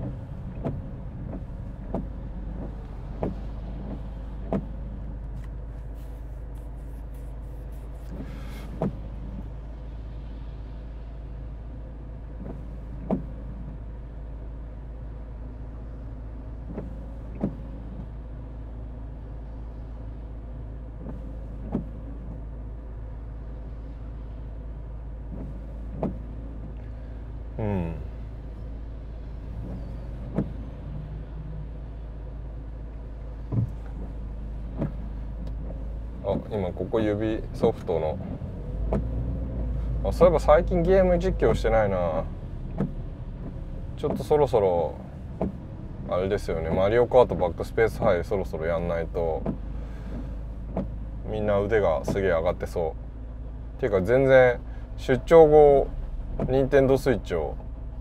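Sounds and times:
car cabin drone: 0.0s - 58.0s
windshield wipers sweeping: 0.0s - 58.0s.

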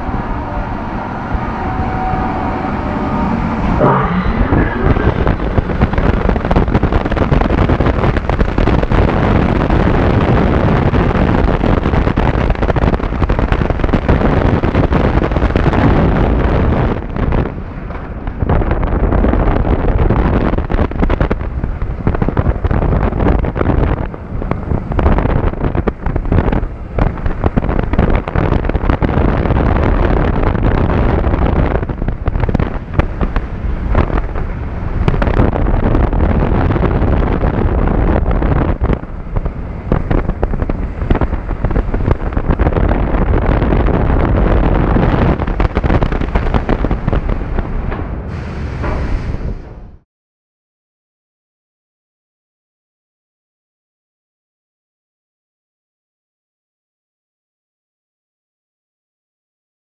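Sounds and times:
roller coaster rumbling on track: 0.0s - 50.0s
wind rushing over camera: 0.0s - 50.0s.

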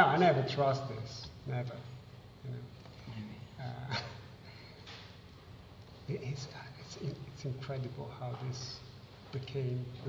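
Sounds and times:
man talking: 0.0s - 4.2s, 6.0s - 10.0s.

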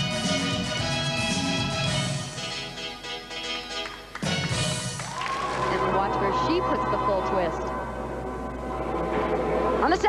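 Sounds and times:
faint floor music: 0.0s - 10.0s.

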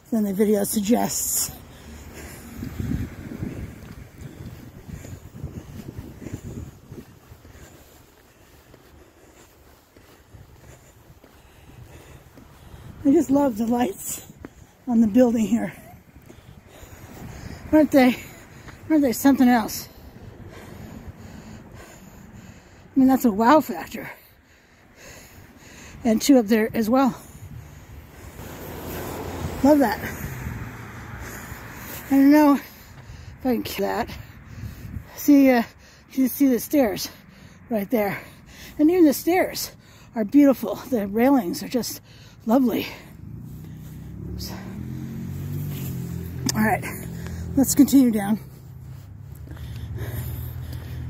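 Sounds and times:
low outdoor rumble: 0.0s - 23.4s, 37.1s - 51.0s
vehicle engine running: 0.1s - 23.6s, 39.6s - 51.0s.

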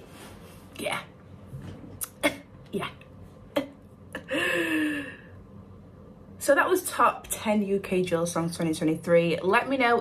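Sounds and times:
woman breathy sigh: 4.2s - 5.4s.

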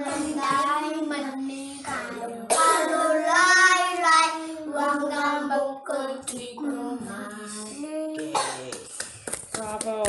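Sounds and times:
children singing together: 0.0s - 8.5s.

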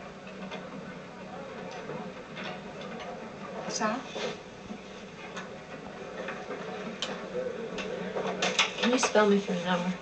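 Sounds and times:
murmur of voices: 0.2s - 10.0s.

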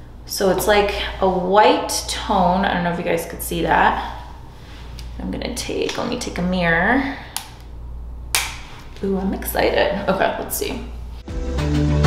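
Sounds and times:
steady low hum: 0.0s - 11.3s.

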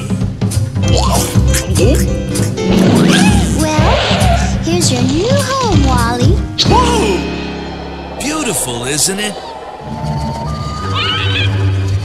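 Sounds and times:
whistle rising in pitch: 9.3s - 11.9s
quavering animal-like call: 9.4s - 12.0s.

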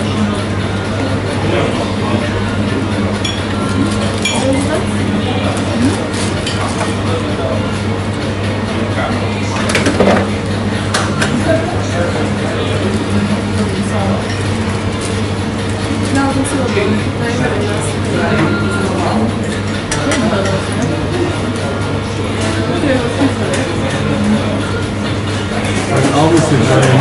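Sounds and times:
indistinct chatter: 0.0s - 27.0s
glasses and dishes clinking: 3.2s - 4.8s.

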